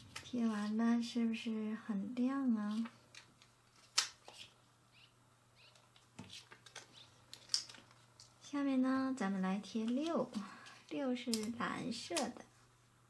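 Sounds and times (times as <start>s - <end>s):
plastic stickers clicking and ticking: 6.6s - 8.3s.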